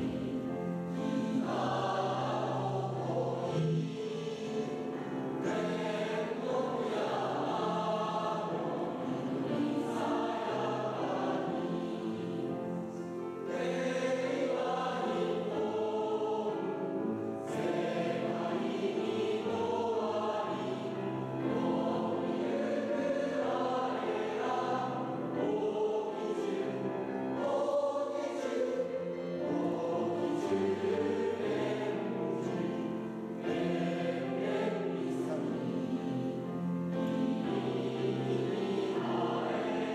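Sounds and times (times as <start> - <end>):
choir singing: 0.0 - 39.9.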